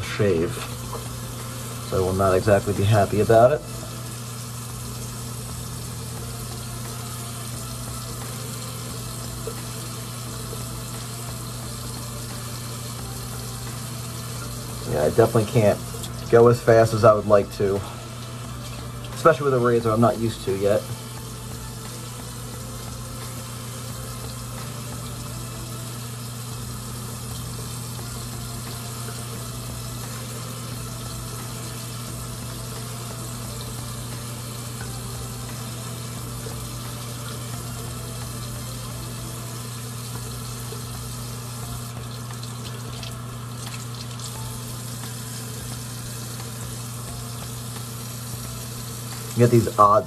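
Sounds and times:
water running from a tap: 0:00.0 - 0:50.0.

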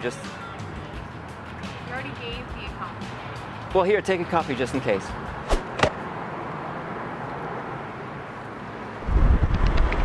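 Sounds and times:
outdoor city background noise: 0:00.0 - 0:10.0
wind buffeting the microphone: 0:09.0 - 0:10.0.

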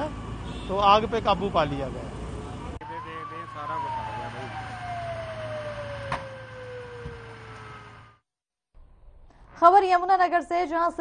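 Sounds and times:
fire engine siren winding down: 0:02.8 - 0:08.2.

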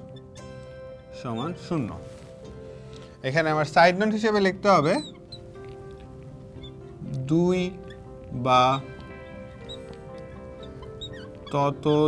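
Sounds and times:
marker squeaking on glass: 0:00.0 - 0:12.0
soft music with held notes: 0:00.0 - 0:12.0.

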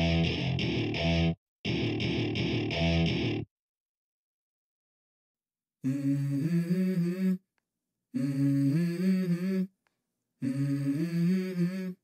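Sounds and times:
person humming a melody: 0:05.8 - 0:07.5, 0:08.2 - 0:09.8, 0:10.4 - 0:12.0.

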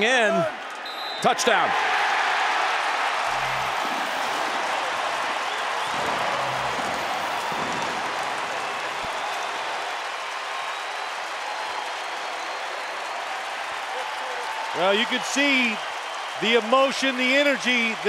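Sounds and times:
crowd cheering and applauding: 0:00.0 - 0:18.0.

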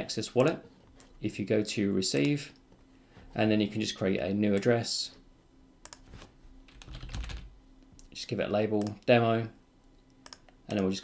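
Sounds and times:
computer keyboard keystrokes: 0:05.8 - 0:06.1, 0:06.7 - 0:07.5, 0:10.2 - 0:10.9.

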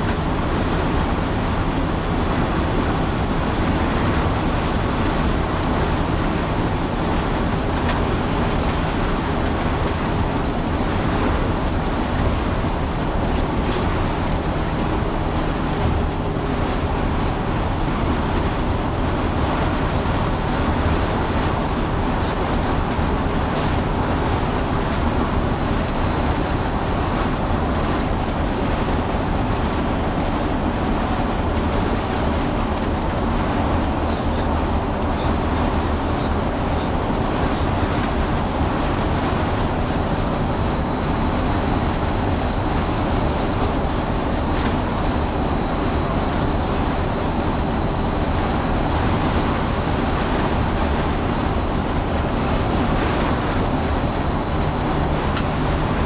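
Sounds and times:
diesel engine drone: 0:00.0 - 0:56.0
tyre and road noise: 0:00.0 - 0:56.0
faint clicks and rattles: 0:21.3 - 0:37.3.

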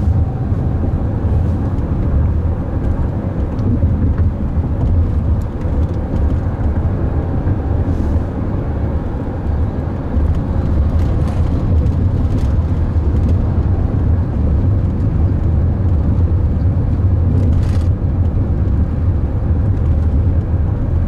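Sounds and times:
road rumble and tyre noise: 0:00.0 - 0:21.0.

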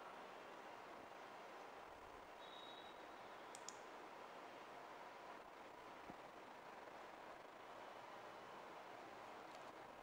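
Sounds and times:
faint room hiss: 0:00.0 - 0:10.0
computer mouse click: 0:03.5 - 0:03.9.

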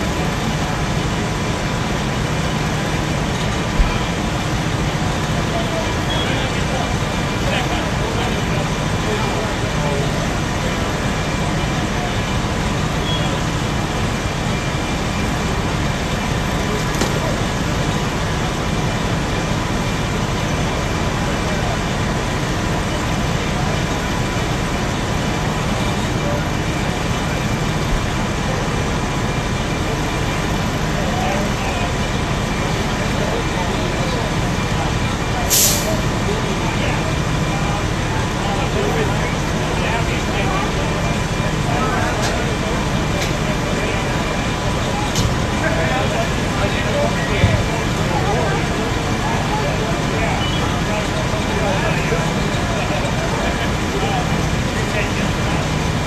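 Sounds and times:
fire engine running: 0:00.0 - 0:56.0
indistinct voices: 0:00.0 - 0:56.0.

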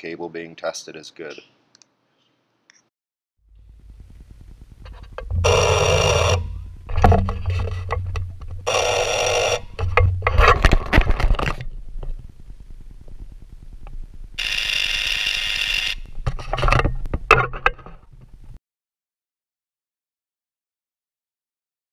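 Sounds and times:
cable tester spark buzzing: 0:03.6 - 0:06.9, 0:08.6 - 0:09.8, 0:14.4 - 0:16.2.

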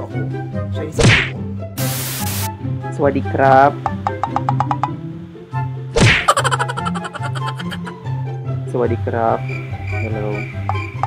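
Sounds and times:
background music with ticking beat: 0:00.2 - 0:11.0
whack sound effect falling in pitch: 0:01.0 - 0:01.3, 0:06.0 - 0:06.4.

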